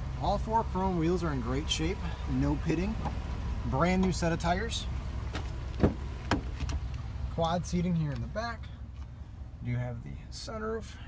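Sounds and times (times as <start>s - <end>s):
low steady rumble: 0.0s - 11.0s
car door latch clicks: 5.3s - 6.9s.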